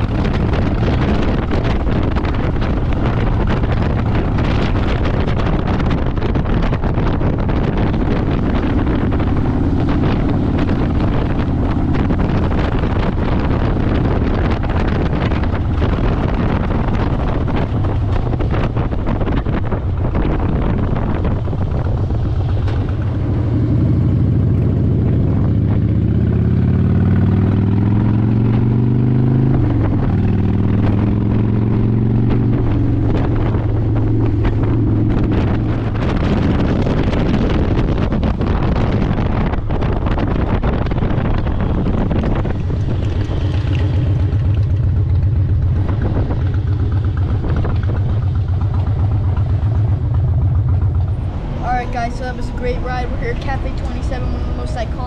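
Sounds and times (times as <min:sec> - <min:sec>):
motorcycle engine revving: 0:00.0 - 0:55.0
wind noise on microphone: 0:00.0 - 0:55.0.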